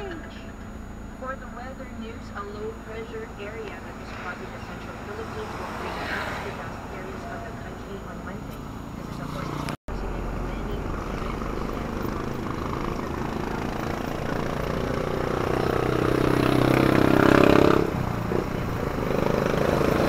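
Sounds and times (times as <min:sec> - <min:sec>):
engine and road noise inside vehicle: 0:00.0 - 0:20.0
passing engine note: 0:01.6 - 0:20.0.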